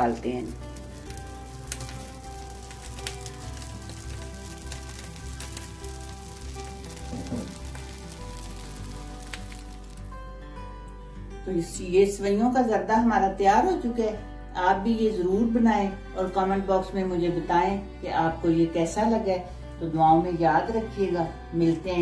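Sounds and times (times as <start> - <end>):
food sizzling in a pan: 0.0 - 10.2
soft background music: 0.0 - 22.0.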